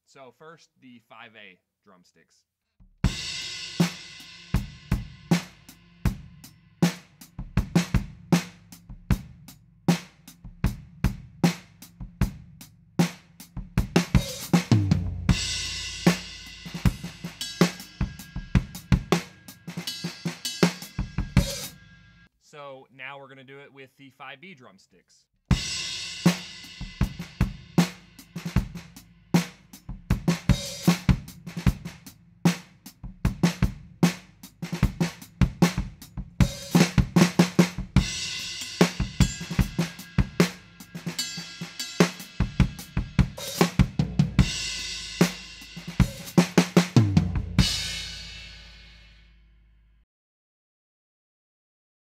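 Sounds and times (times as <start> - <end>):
drum kit beat: 2.8 - 22.7, 25.5 - 49.3.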